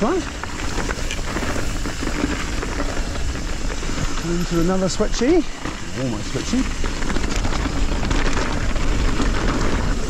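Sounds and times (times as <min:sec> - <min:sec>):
bike rattles and clicks: 0:00.0 - 0:10.0
tyre and wind rumble: 0:00.0 - 0:10.0.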